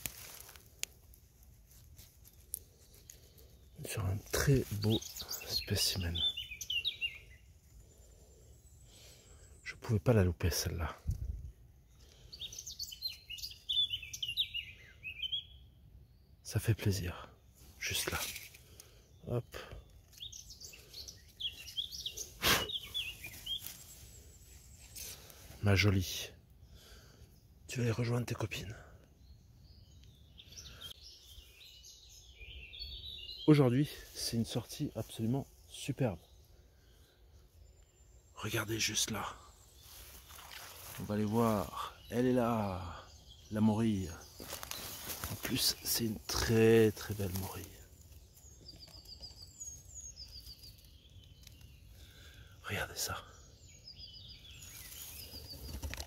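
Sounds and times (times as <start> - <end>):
songbird chirping: 0.0 - 56.0.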